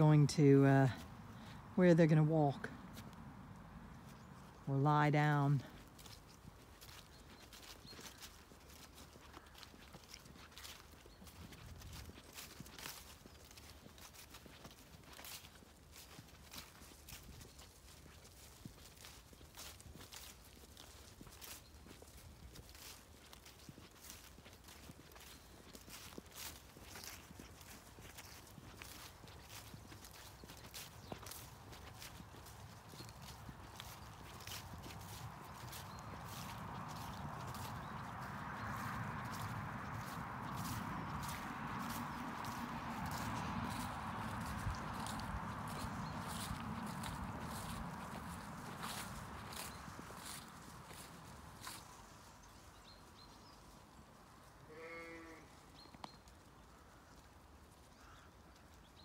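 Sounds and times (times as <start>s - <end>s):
footsteps on grass: 2.4s - 54.1s, 54.8s - 58.7s.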